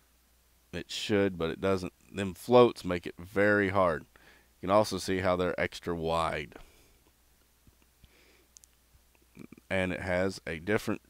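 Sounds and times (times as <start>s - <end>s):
faint clicks of handling toy: 7.0s - 9.3s.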